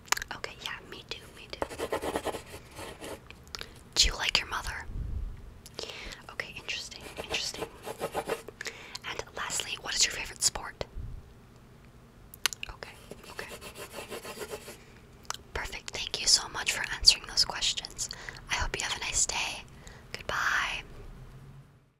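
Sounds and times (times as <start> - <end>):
person whispering: 0.3 - 1.8, 4.0 - 4.9, 6.1 - 7.8, 9.0 - 10.9, 12.6 - 14.1, 15.6 - 20.9
pencil scratching on paper: 1.6 - 3.2, 7.0 - 8.5, 13.0 - 14.8.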